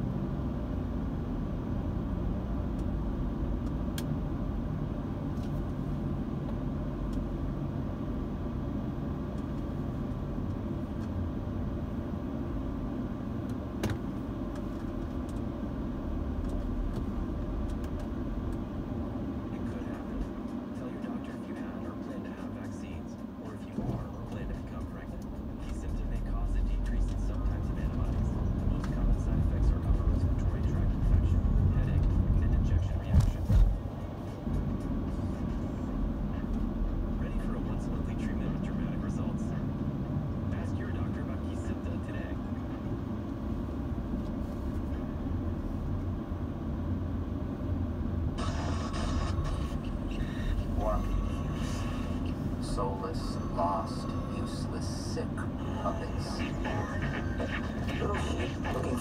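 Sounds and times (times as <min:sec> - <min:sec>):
engine and road rumble: 0:00.0 - 0:59.0
car radio voice and music: 0:18.7 - 0:45.5, 0:48.3 - 0:59.0.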